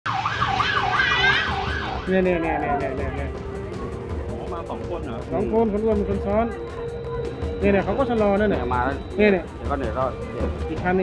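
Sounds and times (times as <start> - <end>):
emergency vehicle siren wailing: 0.1 - 10.9.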